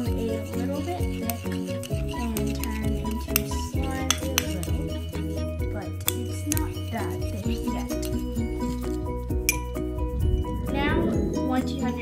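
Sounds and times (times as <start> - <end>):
metal utensil clinking in ceramic bowl: 0.0 - 9.8
background music: 0.0 - 12.0.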